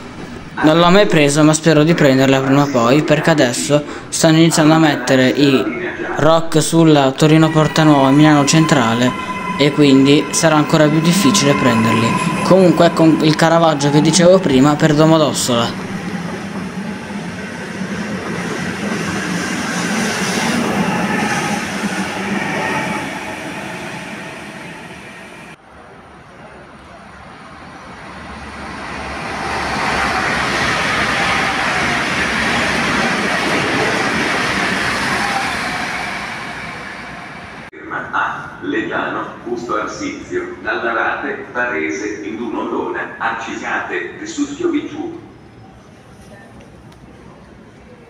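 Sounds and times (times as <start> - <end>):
train rumbling past: 0.0 - 48.0
electric train pulling away: 5.6 - 37.7.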